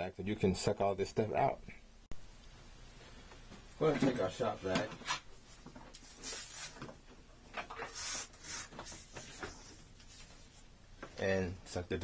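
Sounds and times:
plastic hose rubbing and rustling: 7.6s - 10.6s.

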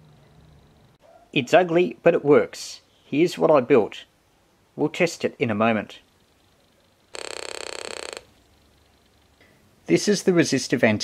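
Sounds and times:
raspy buzzing oscillator: 7.1s - 9.3s.

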